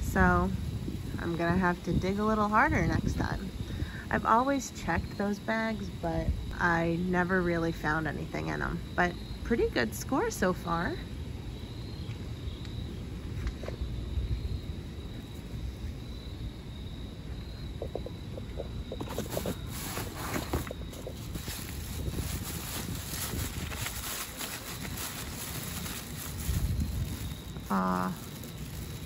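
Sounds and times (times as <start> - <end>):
plastic bags rustling: 19.0 - 29.0.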